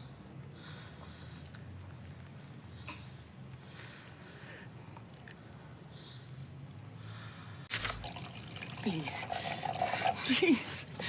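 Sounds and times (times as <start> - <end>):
soft breaths: 0.0 - 7.7.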